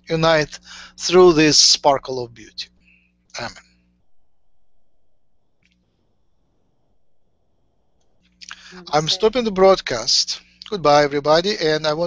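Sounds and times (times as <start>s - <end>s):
faint low background noise: 0.1s - 12.0s
man's short vocal sound: 8.4s - 9.6s.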